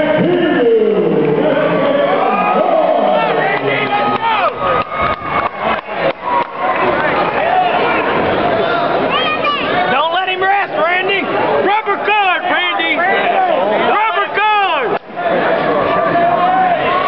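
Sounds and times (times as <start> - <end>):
crowd shouting and cheering: 0.0 - 17.0.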